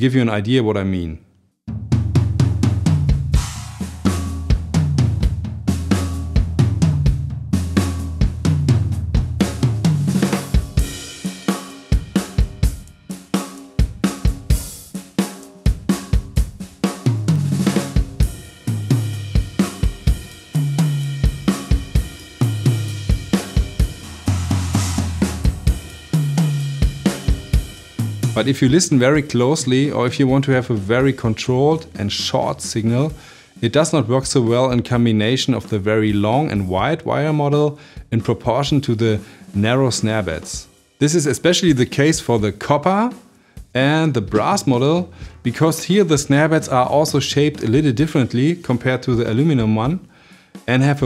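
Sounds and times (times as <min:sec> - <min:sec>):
drum kit groove: 0:01.7 - 0:51.0.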